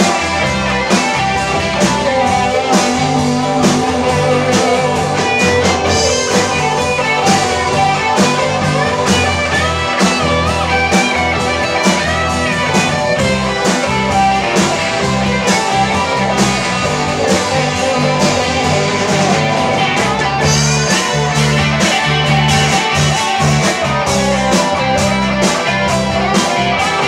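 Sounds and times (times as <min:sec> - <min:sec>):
bass: 0:00.0 - 0:27.0
drums: 0:00.0 - 0:27.0
electric guitar lead: 0:00.0 - 0:27.0.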